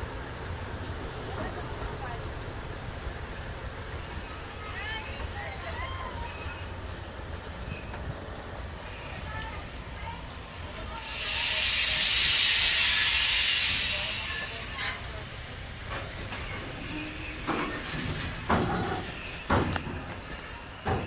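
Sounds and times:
train rumbling: 0.0s - 21.0s
high wheel squeal on rails: 1.3s - 10.2s, 11.0s - 15.2s, 15.8s - 21.0s
loud hiss: 11.0s - 14.8s.

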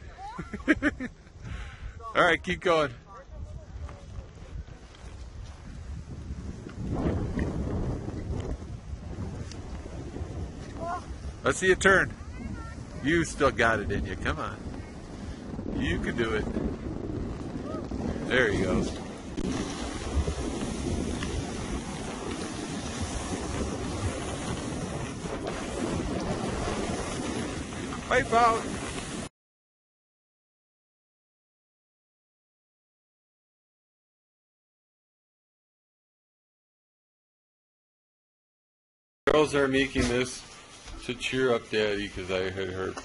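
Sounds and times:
wind rumbling on microphone: 0.0s - 29.3s
skis sliding over snow: 3.4s - 29.3s, 39.4s - 43.0s.

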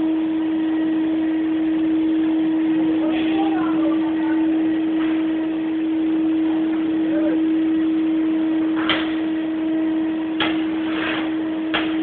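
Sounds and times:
steady mid-pitched hum: 0.0s - 12.0s.

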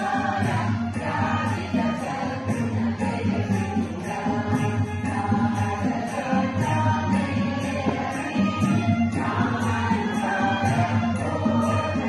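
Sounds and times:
group of men and women singing: 0.0s - 12.0s.

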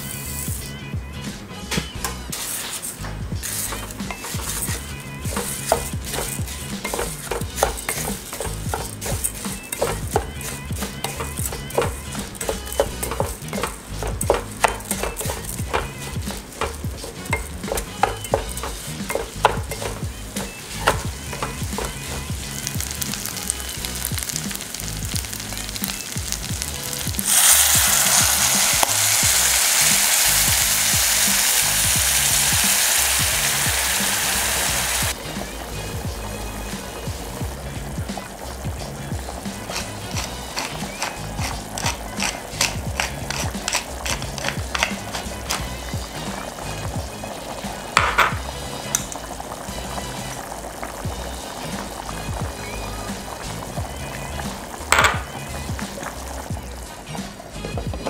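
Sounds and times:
loud sizzle of liquid in pan: 0.0s - 0.8s, 2.2s - 58.0s
wooden spatula scraping rice in pan: 2.3s - 25.4s, 39.4s - 45.6s.

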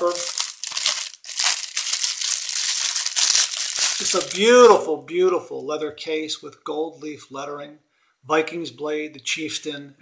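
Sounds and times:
cellophane wrapper crinkling: 0.0s - 4.8s.

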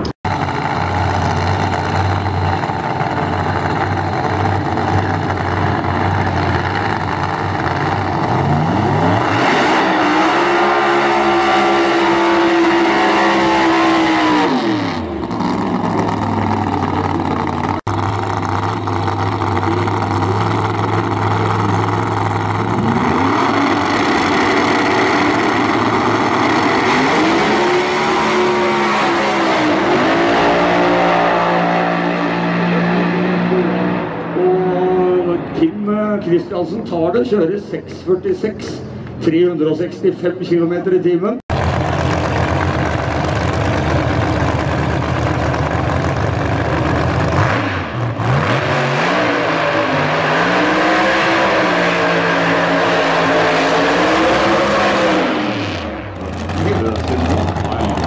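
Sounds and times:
drag racing cars revving: 0.0s - 58.0s.

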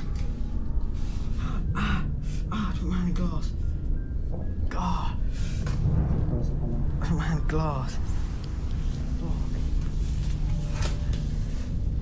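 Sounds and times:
low rumble: 0.0s - 10.6s.

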